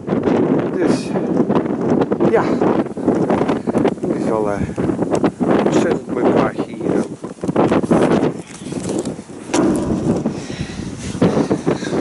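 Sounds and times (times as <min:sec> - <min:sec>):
wind buffeting microphone: 0:00.0 - 0:12.0
camera knocking on metal ledge: 0:09.5 - 0:10.4.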